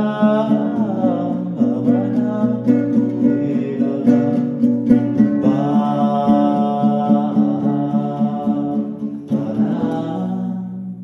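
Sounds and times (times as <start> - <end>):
devotional music with guitar: 0.0 - 11.0.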